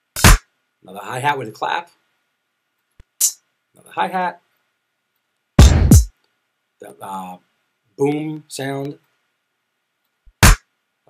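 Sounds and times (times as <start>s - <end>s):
single drum hit: 5.6s - 6.1s.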